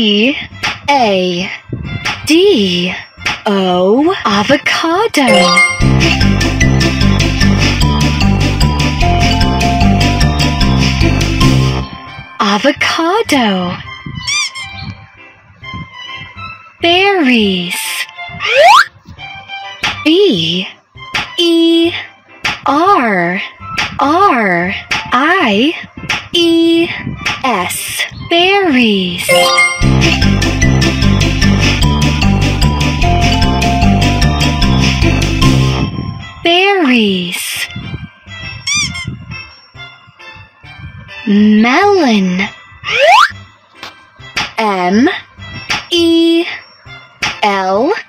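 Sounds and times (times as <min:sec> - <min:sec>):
children's music with steady beat: 0:00.0 - 0:48.0
high warbling sound effect: 0:05.3 - 0:06.0
squeaky cartoon sound effect: 0:14.2 - 0:14.8, 0:18.4 - 0:18.9, 0:38.6 - 0:39.2, 0:42.8 - 0:43.4.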